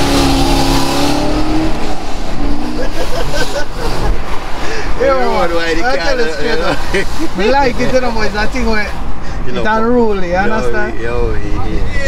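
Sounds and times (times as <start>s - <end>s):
car engine accelerating: 0.0s - 4.6s.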